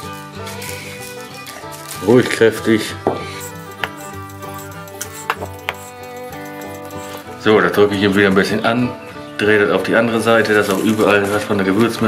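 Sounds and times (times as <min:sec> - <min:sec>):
background music of held notes: 0:00.0 - 0:12.0
sharp clicks: 0:03.5 - 0:07.4.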